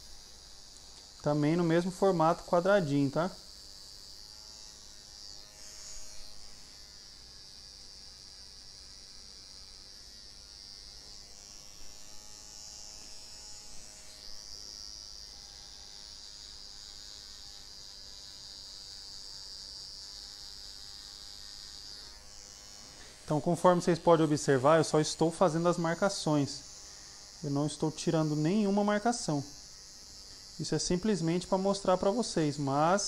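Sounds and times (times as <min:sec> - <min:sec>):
electric hair trimmer buzzing: 0:00.0 - 0:33.0.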